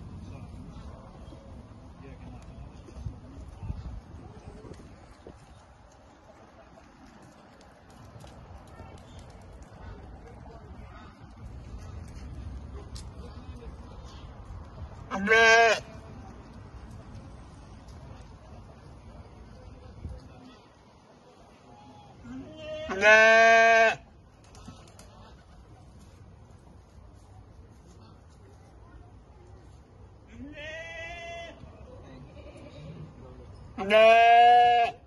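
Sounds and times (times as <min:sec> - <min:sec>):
sheep bleating: 0:22.6 - 0:24.0, 0:33.8 - 0:35.0.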